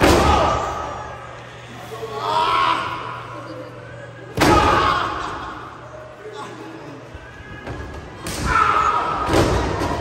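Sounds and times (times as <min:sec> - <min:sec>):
people shouting: 0:00.0 - 0:01.2, 0:01.8 - 0:03.4, 0:04.2 - 0:10.0.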